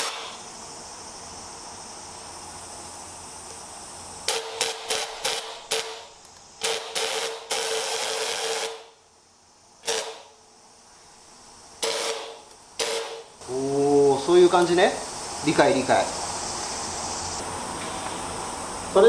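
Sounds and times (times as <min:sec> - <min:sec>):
spray gun hissing bursts: 0:00.0 - 0:19.0.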